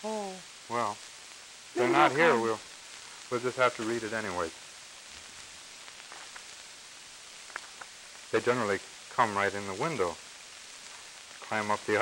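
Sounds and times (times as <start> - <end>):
old soundtrack hiss: 0.0 - 12.0
faint ticks: 4.7 - 8.4, 10.2 - 11.6.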